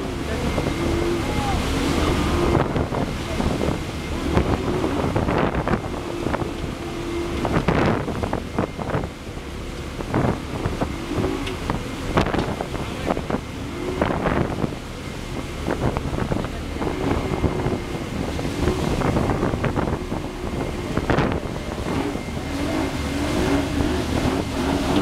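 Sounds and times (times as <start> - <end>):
boat engines droning: 0.0 - 25.0
churning wake water: 0.0 - 25.0
wind buffeting microphone: 0.0 - 25.0.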